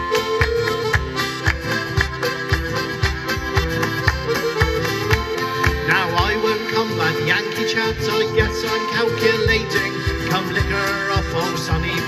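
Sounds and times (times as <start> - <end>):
accordion: 0.0 - 12.0
acoustic guitar: 0.0 - 12.0
hands clapping along: 0.0 - 12.0.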